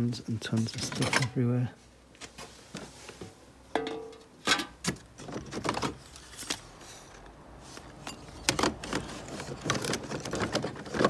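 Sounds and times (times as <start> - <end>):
objects knocking and clinking: 3.8 - 4.7
hand rummaging in cardboard box: 8.4 - 11.0.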